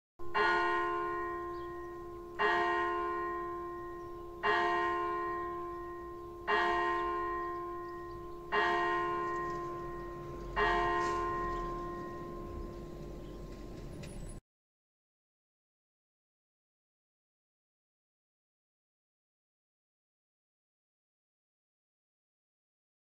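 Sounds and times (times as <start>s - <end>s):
church bell tolling: 0.2s - 14.4s.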